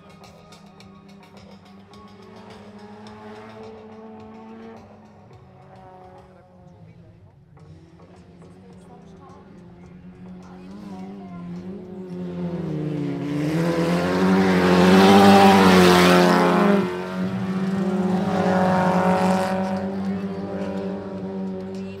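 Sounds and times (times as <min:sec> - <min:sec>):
race car engines passing: 0:00.0 - 0:22.0.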